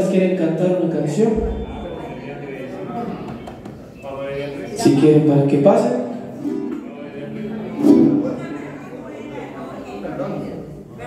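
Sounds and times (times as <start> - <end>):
voices in the room: 0.0 - 11.0.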